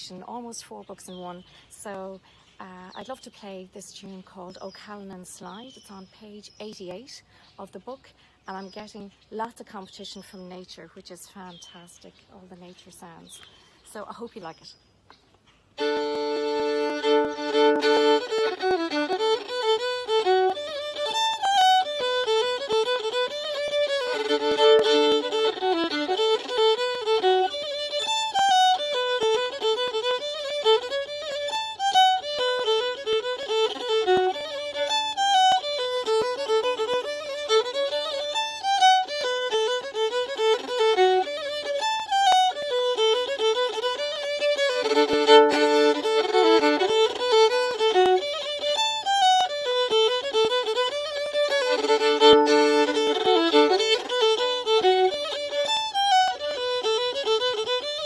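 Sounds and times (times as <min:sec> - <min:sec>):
fiddle playing fast melody: 0:15.7 - 0:58.0.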